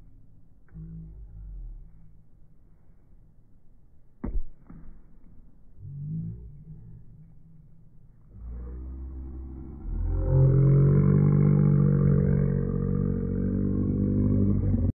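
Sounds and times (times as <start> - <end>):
muffled engine revving: 8.3 - 14.9.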